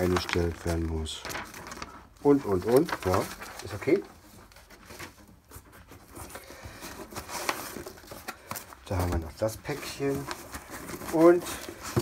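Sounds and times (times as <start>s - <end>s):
paper and cardboard rustling: 0.0s - 12.0s.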